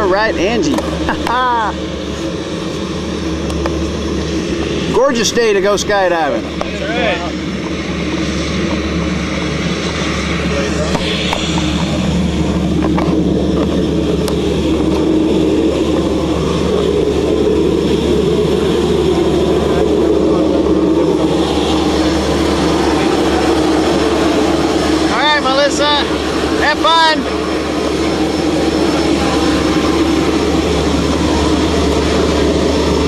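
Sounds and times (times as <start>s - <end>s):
propeller airplane engine droning: 0.0s - 33.0s.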